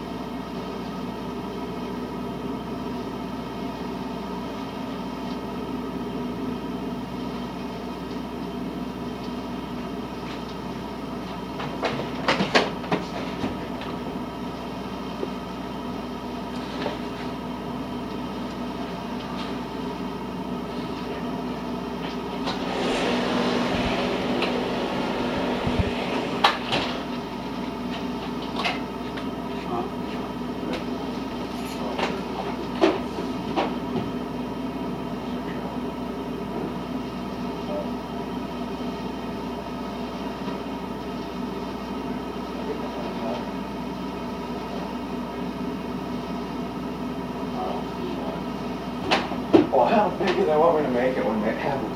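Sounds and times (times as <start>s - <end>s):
muffled leaf vacuum droning: 22.3s - 28.6s.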